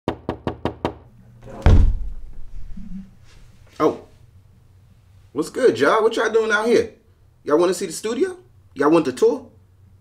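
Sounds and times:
knocks on a door: 0.1s - 2.1s.

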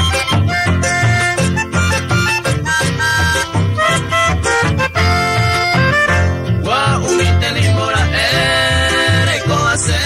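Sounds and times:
accordion melody: 0.0s - 10.0s
steady bass and rhythm: 0.0s - 10.0s.

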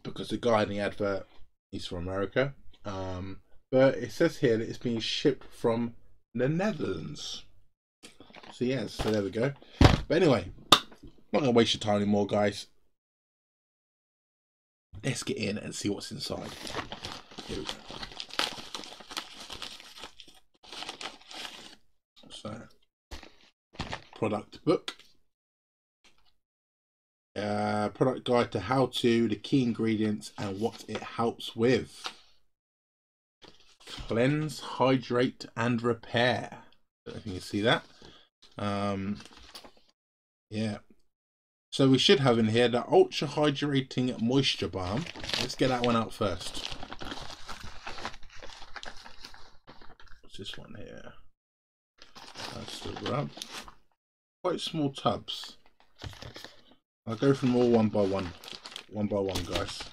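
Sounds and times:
plastic mailer crinkling and tearing: 16.4s - 21.8s, 44.8s - 50.2s, 52.0s - 53.8s, 55.6s - 59.9s.

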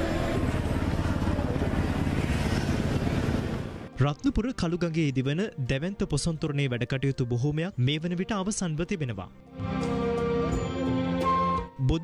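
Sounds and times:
vehicle engine running: 0.0s - 3.9s
outdoor street noise: 0.0s - 4.0s.

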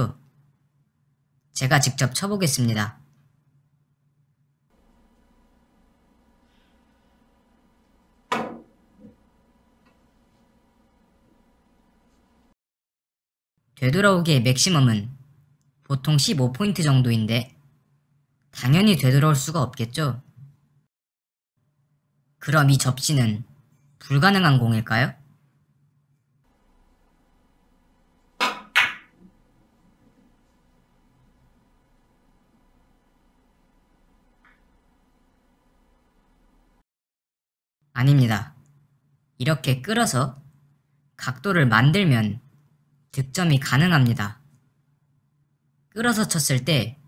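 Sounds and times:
ball knock: 8.3s - 8.8s, 28.4s - 29.1s
cue striking ball click: 28.4s - 29.1s.

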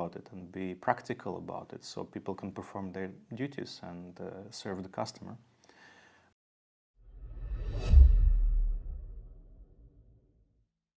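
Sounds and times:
whoosh: 7.0s - 10.2s
deep booming hit: 7.2s - 10.1s.

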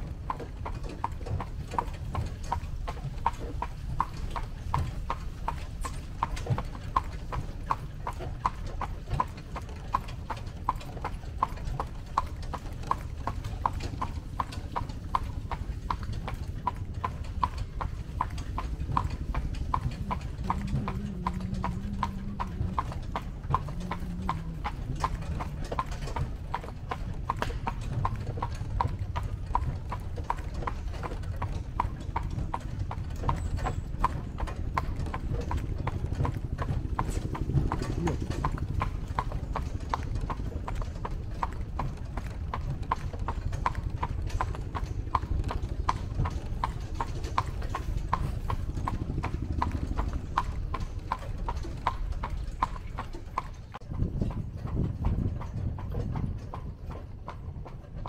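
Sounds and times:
horse hooves clip-clopping on pavement: 0.0s - 58.0s.

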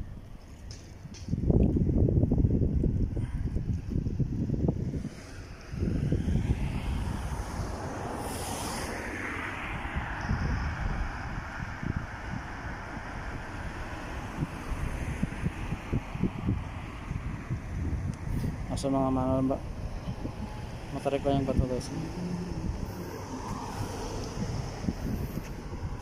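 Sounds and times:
wind buffeting microphone: 0.0s - 26.0s
steady rushing hiss: 5.0s - 9.2s.

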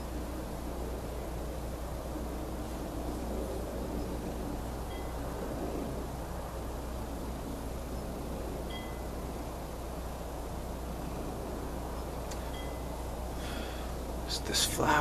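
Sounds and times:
constant low hum: 0.0s - 15.0s
rumbling hiss: 0.0s - 15.0s.

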